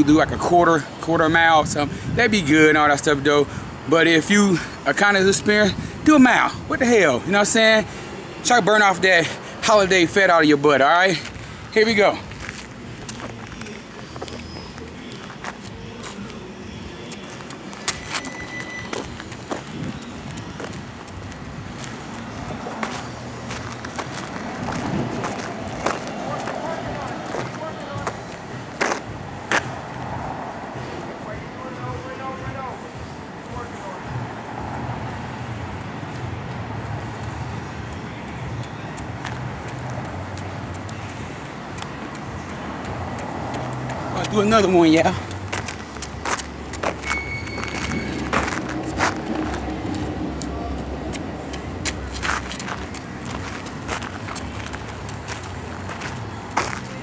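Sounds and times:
road traffic hum: 0.0 - 57.0
faint indistinct voices: 13.0 - 18.2.

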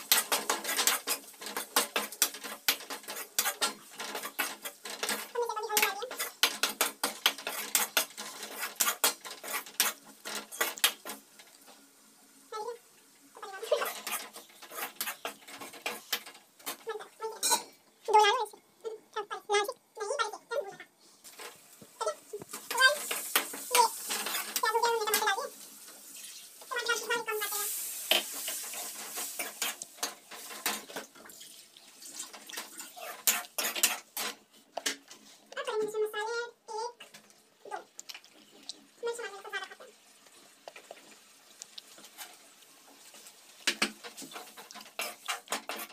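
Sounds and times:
metal ladle scraping a pan: 0.0 - 11.2, 13.6 - 16.8, 22.6 - 25.3, 26.9 - 31.0, 32.1 - 34.4, 44.0 - 45.9
faint frying hiss: 0.0 - 45.9.

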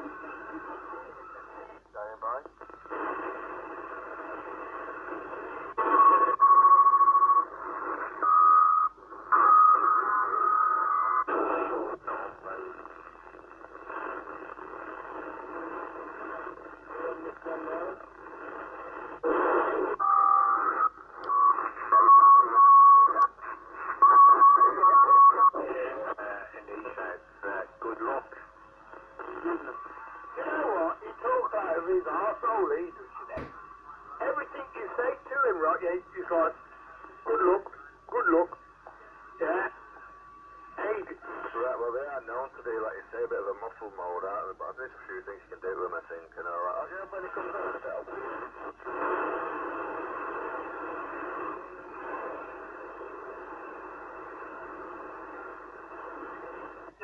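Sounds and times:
radio static hiss: 0.0 - 57.0.

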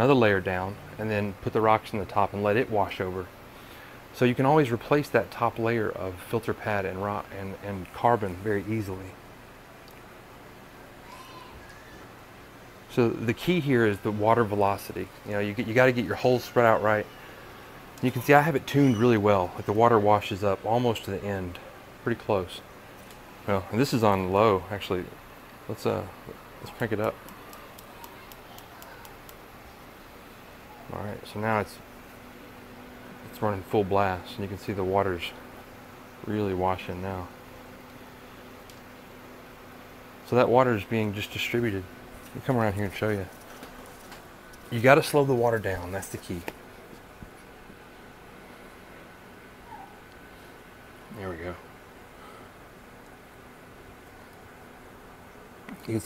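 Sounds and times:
water pump running: 12.9 - 29.6, 40.2 - 47.2
faint irregular ticks: 27.0 - 29.4.

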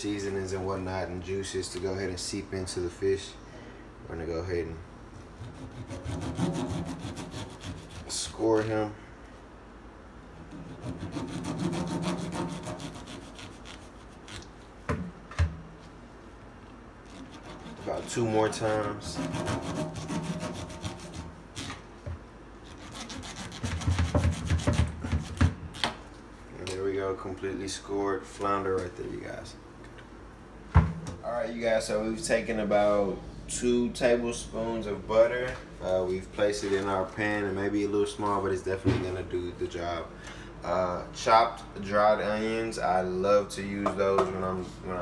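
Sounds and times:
knife sawing fish skin: 5.4 - 8.2, 10.5 - 14.5, 17.1 - 21.8, 22.6 - 25.4.

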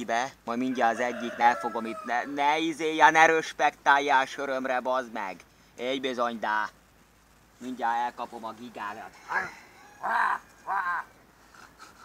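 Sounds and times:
chickens squawking: 0.5 - 2.7, 8.9 - 12.0.

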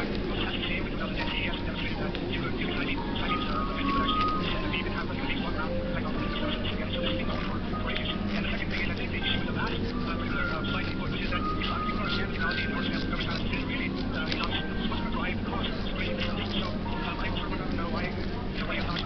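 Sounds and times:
chatter of many voices: 0.0 - 19.0
steady low hum: 0.0 - 19.0.

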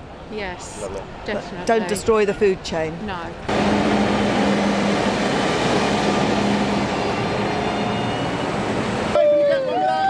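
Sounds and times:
road noise: 0.0 - 10.0
tractor diesel engines: 3.4 - 10.0.

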